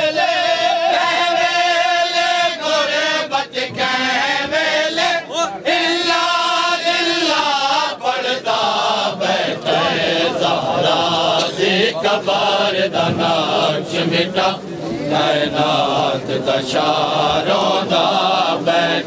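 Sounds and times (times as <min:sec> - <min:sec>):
men chanting in unison: 0:00.0 - 0:19.0.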